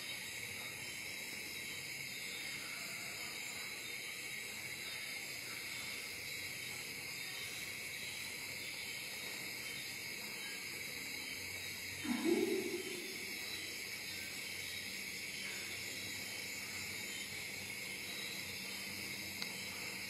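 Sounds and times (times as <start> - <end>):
background hiss: 0.0 - 20.0.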